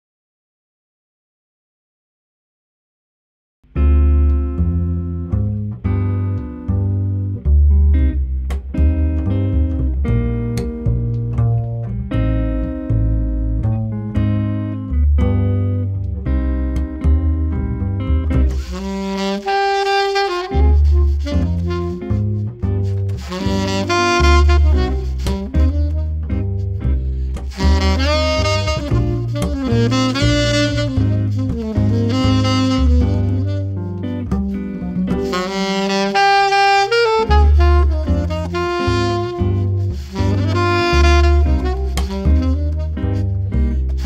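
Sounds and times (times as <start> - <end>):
guitar chords: 3.7 - 44.0
walking double bass line: 3.7 - 44.0
saxophone melody: 17.4 - 44.0.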